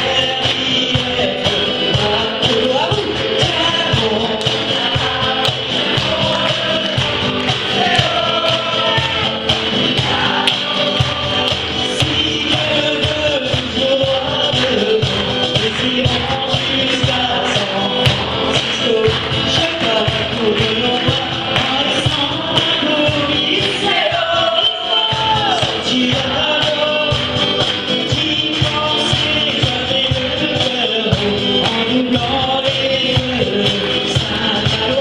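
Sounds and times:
person singing: 0.0 - 35.0
steady percussion beat: 0.0 - 35.0
strummed acoustic guitar: 0.0 - 35.0.

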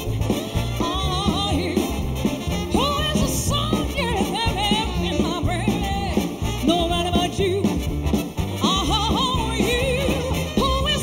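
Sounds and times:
bass and drums: 0.0 - 11.0
trumpet section: 0.0 - 11.0.

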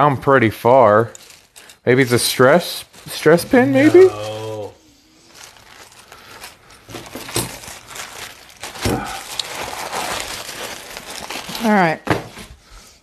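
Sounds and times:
plastic packaging rustling: 1.0 - 12.7.

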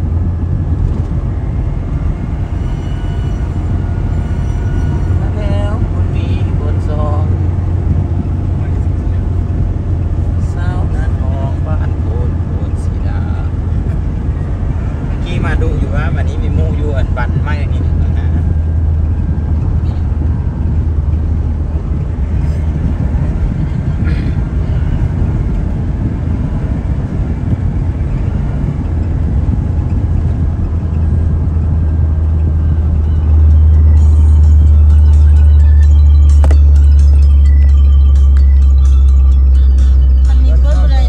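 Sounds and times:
car driving on highway from inside: 0.0 - 41.0.

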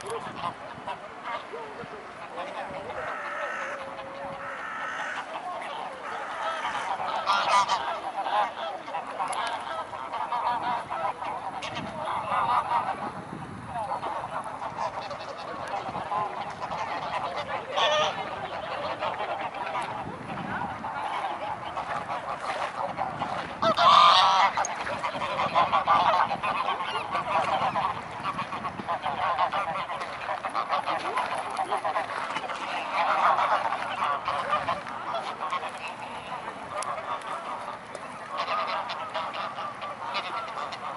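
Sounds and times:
geese honking and cackling: 0.0 - 40.9.

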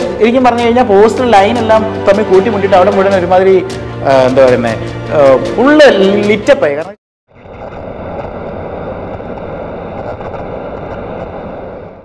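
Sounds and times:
steady rumbling noise: 7.3 - 12.0.

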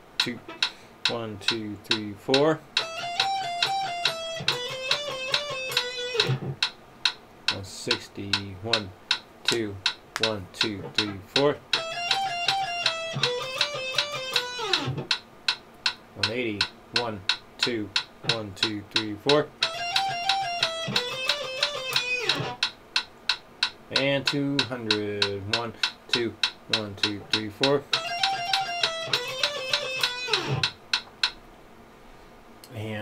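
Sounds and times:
metronome clicking: 0.2 - 31.4
electric guitar notes: 2.8 - 6.6, 11.8 - 15.1, 19.6 - 22.6, 27.9 - 30.7.

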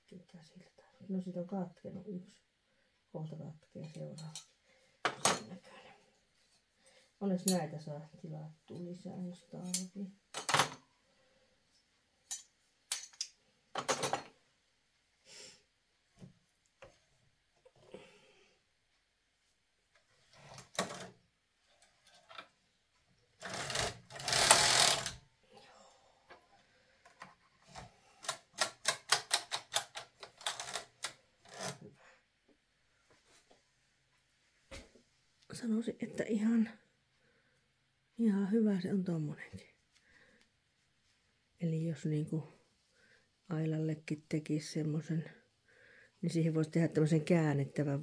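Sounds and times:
knitting carriage sliding: 20.2 - 21.2, 23.4 - 25.2, 27.7 - 31.9
knitting machine clicks and clacks: 20.7 - 21.1, 23.4 - 25.2, 28.2 - 31.8.

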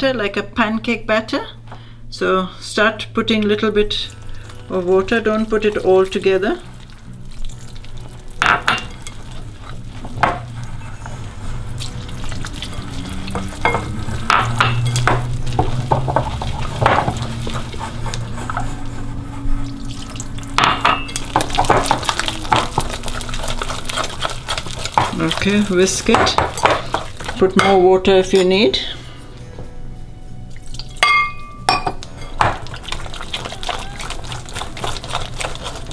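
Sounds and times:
whisk beating batter: 8.8 - 20.5, 21.1 - 27.8, 32.4 - 35.9
whisk tapping glass bowl: 13.3 - 18.8, 20.6 - 27.9.

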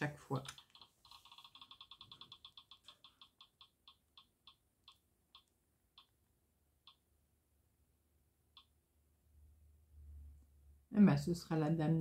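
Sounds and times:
spinning wheel app ticking: 0.3 - 7.3.

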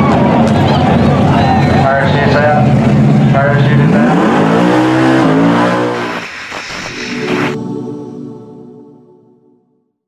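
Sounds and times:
race car accelerating hard: 0.0 - 7.6.

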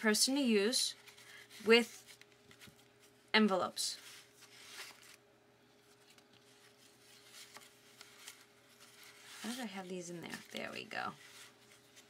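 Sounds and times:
faint steady hum: 0.0 - 12.0
paper cards rustling and tapping: 0.9 - 5.2, 5.8 - 12.0.

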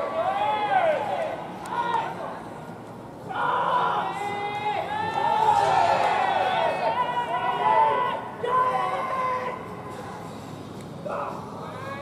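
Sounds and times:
players shouting long calls: 0.0 - 2.4, 3.2 - 9.8
field background noise: 0.0 - 12.0.

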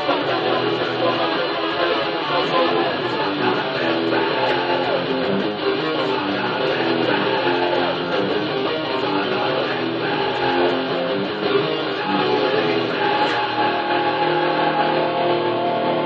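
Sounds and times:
electric guitar rock riff: 0.0 - 16.0.

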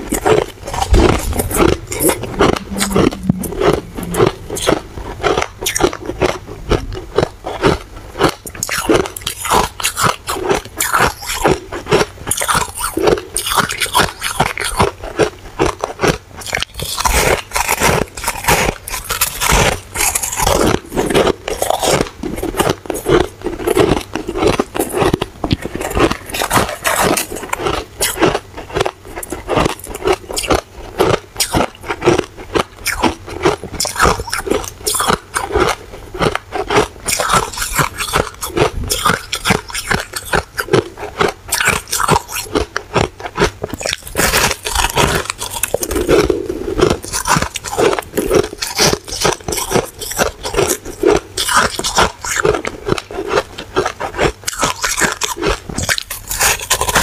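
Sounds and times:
chewing crunchy shaved ice: 0.0 - 57.0.

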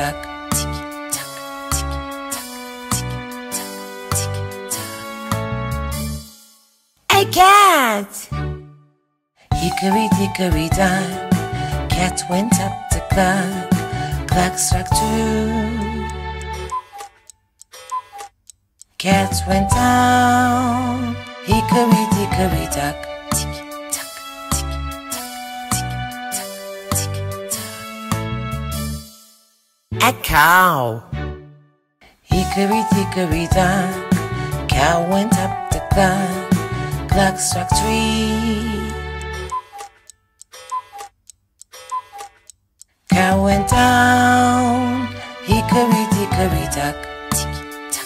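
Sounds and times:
clock ticking: 39.8 - 43.0.

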